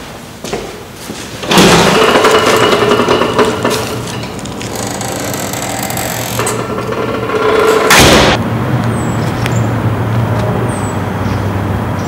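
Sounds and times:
loud steady mechanical noise: 1.4 - 12.0.

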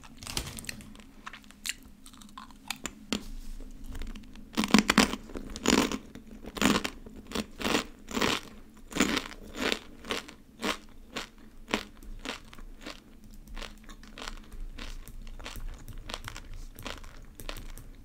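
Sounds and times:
crunchy snack chewing: 1.3 - 2.9, 3.8 - 18.0.

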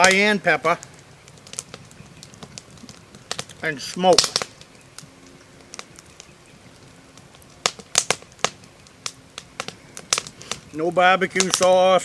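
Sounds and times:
campfire crackling and popping: 0.0 - 12.0.

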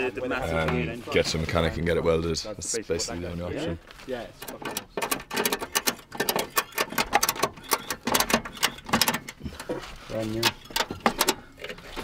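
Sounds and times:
ratchet strap clicking: 4.4 - 9.4.

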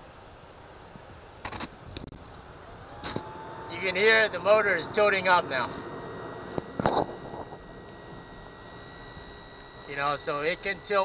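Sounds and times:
electric motor humming: 2.2 - 11.0.

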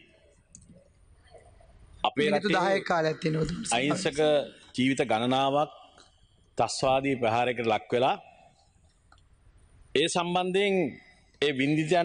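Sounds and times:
man speaking: 2.0 - 6.0, 6.6 - 8.3, 10.0 - 12.0.

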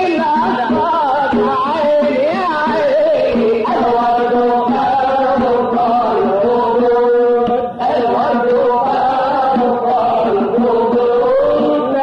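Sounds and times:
person chanting unaccompanied: 0.0 - 12.0.

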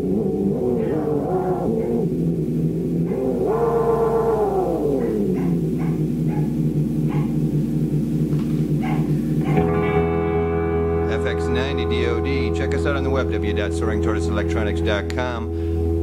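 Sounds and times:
delay pedal echoes: 0.0 - 16.0
low buzzy hum: 0.0 - 16.0.

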